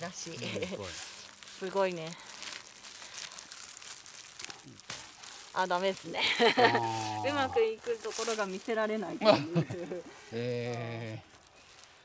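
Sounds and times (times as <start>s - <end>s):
plastic glove crinkling: 0.0s - 10.0s, 11.0s - 12.0s
soft crackles in dry grass: 0.0s - 12.0s.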